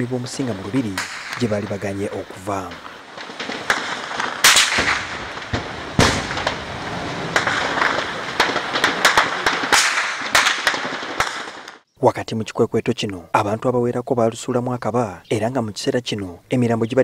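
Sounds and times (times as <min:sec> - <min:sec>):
distant gunshots: 0:00.0 - 0:11.8.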